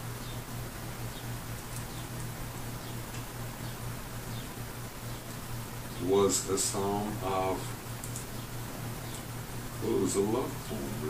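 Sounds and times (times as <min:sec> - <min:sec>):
low hum with faint hiss: 0:00.0 - 0:11.0.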